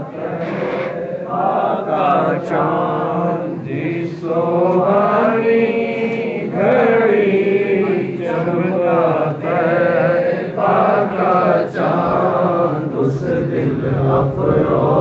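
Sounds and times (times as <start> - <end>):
men chanting together: 0.0 - 15.0.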